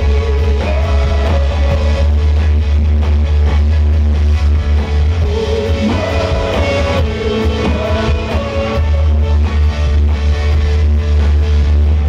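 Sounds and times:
man singing: 0.0s - 2.2s, 5.2s - 9.4s
live rock band playing: 0.0s - 12.0s.

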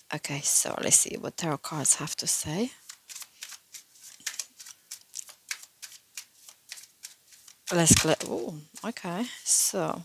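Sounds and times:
cards being shuffled: 2.8s - 8.9s.

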